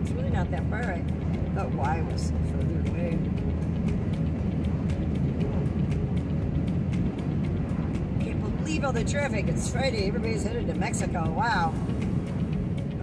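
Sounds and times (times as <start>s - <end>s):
truck engine and road noise: 0.0s - 13.0s.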